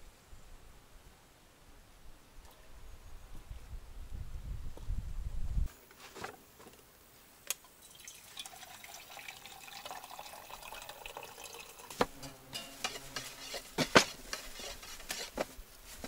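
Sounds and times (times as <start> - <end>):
liquid pouring into metal mug: 7.8 - 12.0.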